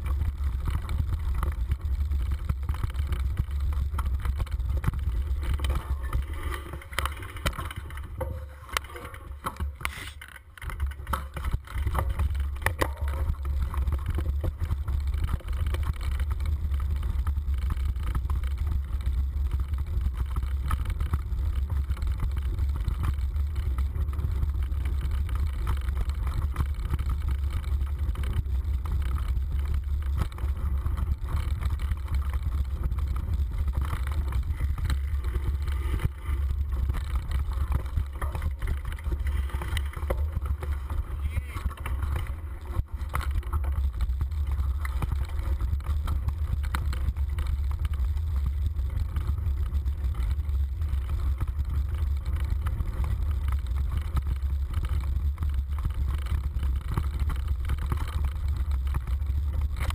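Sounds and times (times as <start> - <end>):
wind rumble on microphone: 0.0 - 59.9.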